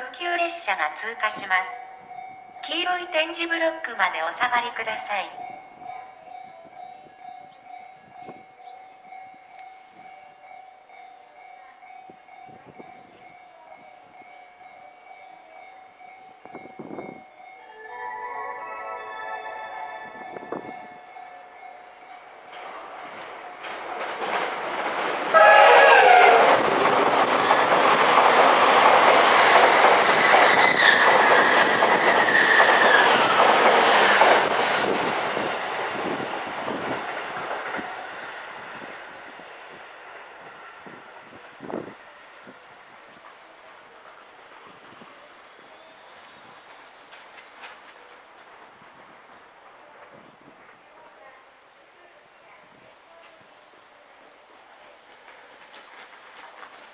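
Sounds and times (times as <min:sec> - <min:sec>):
train running on rails: 0:00.0 - 0:56.9
train horn: 0:17.6 - 0:21.5, 0:25.3 - 0:26.7.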